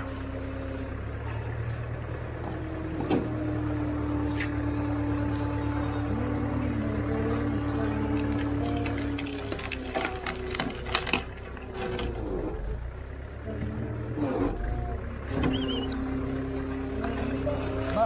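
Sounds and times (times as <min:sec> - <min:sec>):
log splitter engine humming: 0:00.0 - 0:18.0
wood cracking and splintering: 0:06.5 - 0:12.5.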